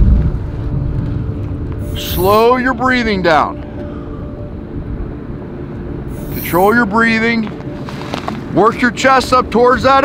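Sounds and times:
faint steady hum: 0.0s - 10.0s
low outdoor rumble: 0.0s - 10.0s.

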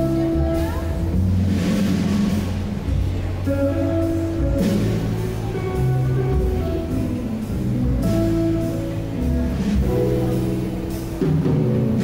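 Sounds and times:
double bass low rumble: 0.0s - 12.0s
jazz trio playing: 0.0s - 12.0s.

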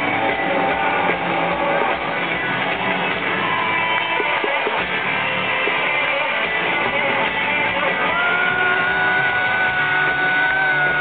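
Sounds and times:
live rock band: 0.0s - 11.0s
steady drumbeat: 0.0s - 11.0s.

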